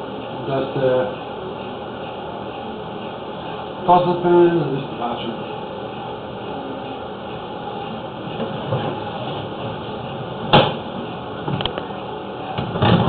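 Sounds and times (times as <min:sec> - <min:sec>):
steady mechanical noise: 0:00.0 - 0:13.0.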